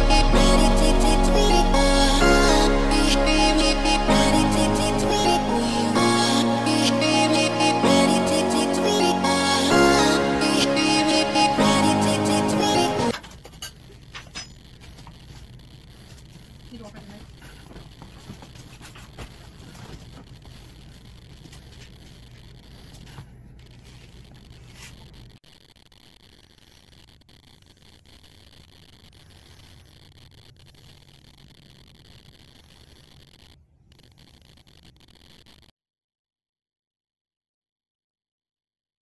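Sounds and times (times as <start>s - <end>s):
cat paws scrabbling on wooden floor: 14.8s - 20.8s.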